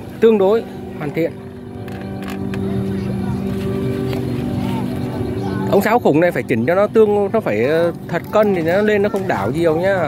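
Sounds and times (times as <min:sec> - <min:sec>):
kite flutes droning: 0:00.0 - 0:10.0.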